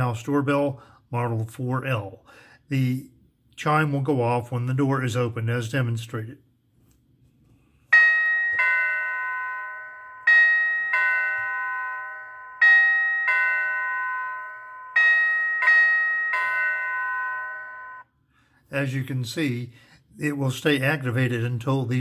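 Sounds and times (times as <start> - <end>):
door chime ding-dong: 7.9 - 18.2.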